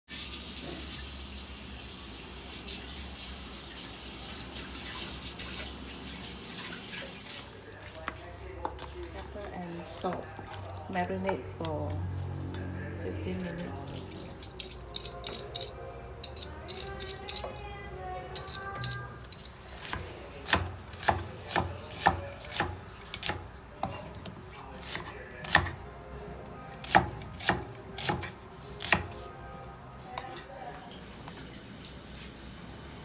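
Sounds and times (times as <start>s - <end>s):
knife chopping on wooden board: 19.8s - 25.8s, 26.8s - 29.2s.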